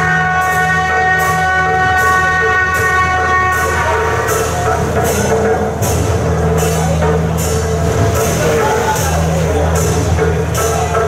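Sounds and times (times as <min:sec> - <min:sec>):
held horn-like tones: 0:00.0 - 0:10.3
cymbal-like crashes: 0:00.0 - 0:11.0.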